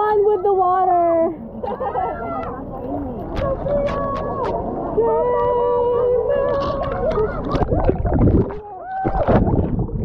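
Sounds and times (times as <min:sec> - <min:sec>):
muffled underwater gurgling: 0:05.4 - 0:10.0.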